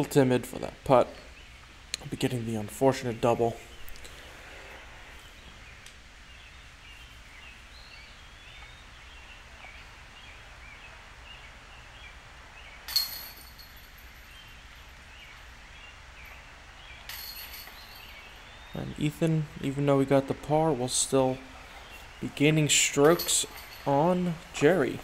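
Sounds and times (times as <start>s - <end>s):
bird calls: 3.6s - 13.0s
disc striking basket chains: 12.9s - 14.9s, 16.2s - 18.6s, 22.7s - 25.0s.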